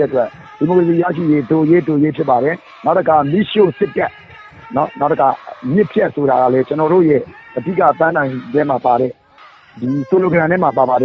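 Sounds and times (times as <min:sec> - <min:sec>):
person speaking: 0:00.0 - 0:09.2, 0:09.8 - 0:11.0.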